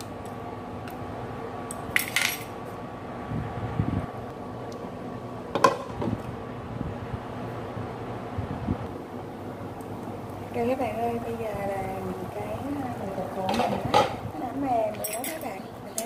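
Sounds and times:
steady low hum: 0.0 - 16.0
metal chopsticks clinking on pot: 14.9 - 16.0.

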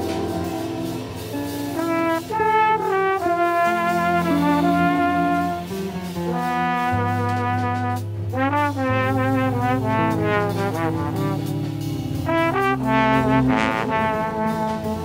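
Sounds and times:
trombone playing slow melody: 0.0 - 15.0
upright bass: 3.4 - 15.0.

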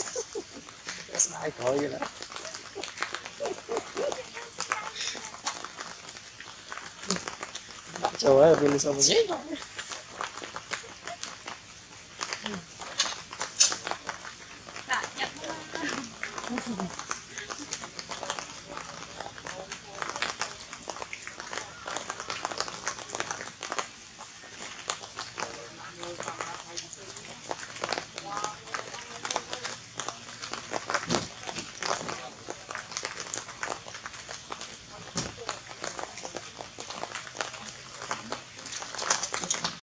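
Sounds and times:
people talking: 0.0 - 5.6, 7.9 - 9.6, 12.4 - 12.7, 14.8 - 23.5, 25.4 - 30.5, 31.1 - 32.8, 34.7 - 36.6
rustling: 0.0 - 39.8.

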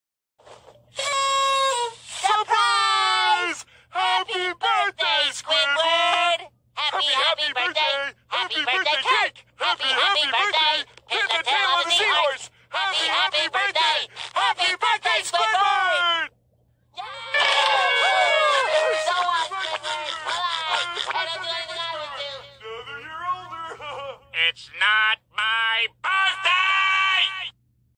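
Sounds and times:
high noisy held cry: 2.2 - 4.5, 17.0 - 27.6.

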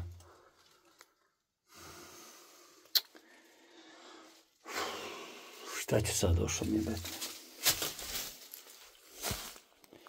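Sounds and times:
soft faint rustling: 6.2 - 9.8.

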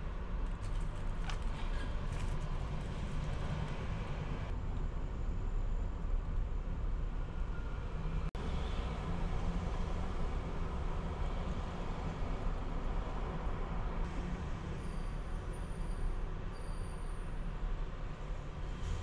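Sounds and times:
road traffic rumble: 0.0 - 19.0.

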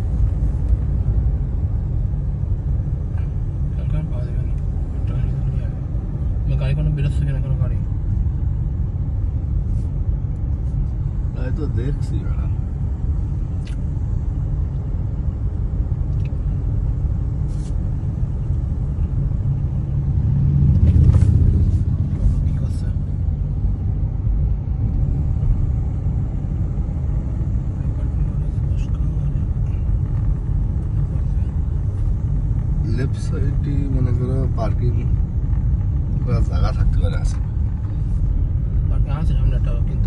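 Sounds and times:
car driving rumble inside cabin: 0.0 - 40.0.

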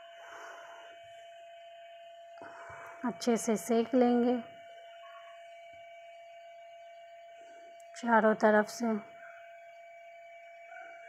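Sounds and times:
constant background tone: 0.0 - 11.0.

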